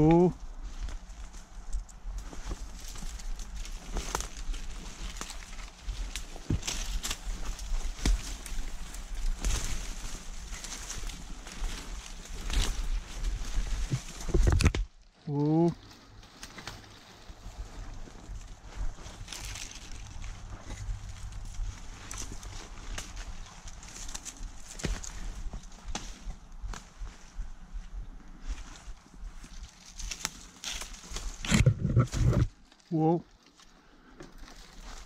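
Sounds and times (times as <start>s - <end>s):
footsteps crunching dry leaves: 0.0s - 35.0s
stems brushing against clothing: 0.0s - 35.0s.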